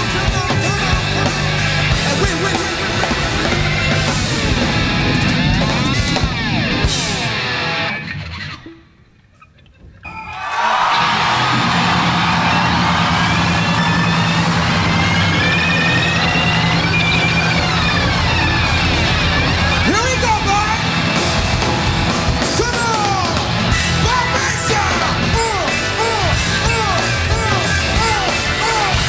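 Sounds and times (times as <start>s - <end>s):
steady bass: 0.0s - 8.0s, 11.0s - 29.0s
live rock band playing: 0.0s - 8.5s, 10.9s - 29.0s
gliding electric guitar lines: 1.1s - 9.0s, 10.9s - 22.6s.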